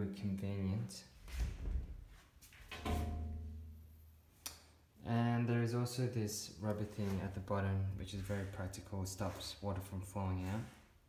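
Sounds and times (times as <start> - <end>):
low ringing tone: 2.8 - 3.9.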